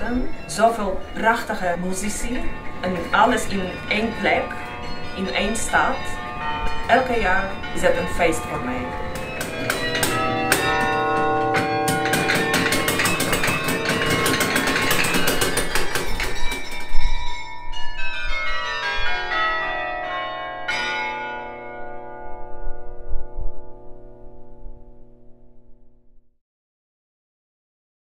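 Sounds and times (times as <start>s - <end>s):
carillon bells ringing: 0.0s - 24.1s.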